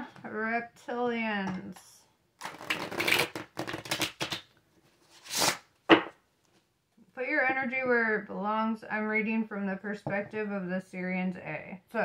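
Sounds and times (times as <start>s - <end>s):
cards shuffled by hand: 2.5s - 4.5s.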